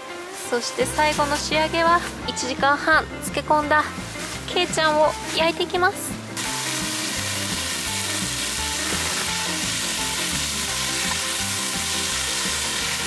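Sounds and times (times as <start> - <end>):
meat sizzling on a griddle: 6.3 - 13.0
spatula turning food: 6.4 - 13.0.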